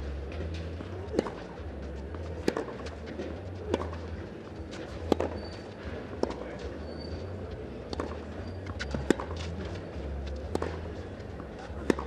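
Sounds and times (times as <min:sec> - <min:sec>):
tennis ball struck by racket: 0:00.3 - 0:07.1, 0:07.8 - 0:12.0.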